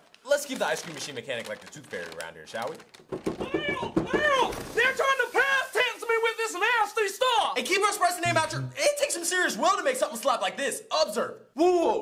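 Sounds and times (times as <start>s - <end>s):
man shouting in strained voice: 8.2s - 8.8s.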